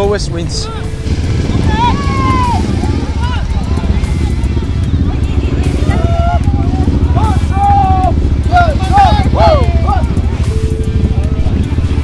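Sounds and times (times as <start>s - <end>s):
motorcycles idling: 0.0s - 12.0s
people's voices and shouts: 0.4s - 11.9s.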